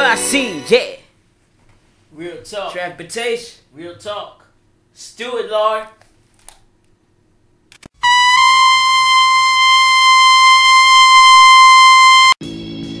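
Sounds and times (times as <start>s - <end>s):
music: 0.0s - 1.0s, 11.1s - 13.0s
buzzy electronic tone: 8.0s - 12.4s.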